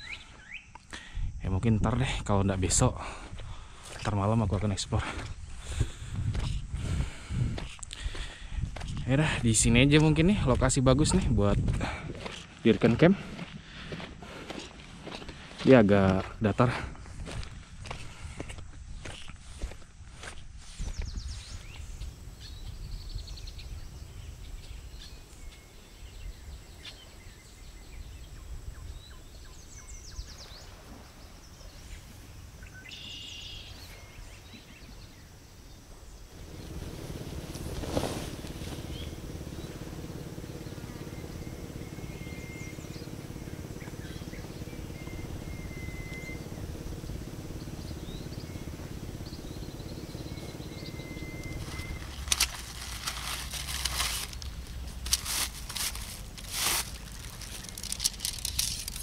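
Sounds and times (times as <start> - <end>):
bird chirps: 0.0 - 1.0, 20.9 - 54.8
low wind rumble: 1.1 - 15.6, 16.2 - 33.4, 34.0 - 59.0
footsteps on sand: 3.0 - 21.8, 36.3 - 59.0
steady hum: 36.0 - 59.0.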